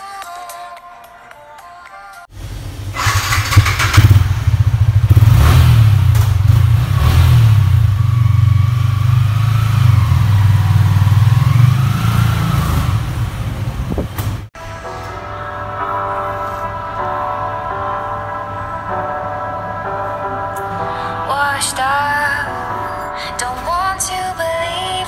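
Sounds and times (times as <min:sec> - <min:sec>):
motorcycle engine revving and running: 0:02.8 - 0:14.5.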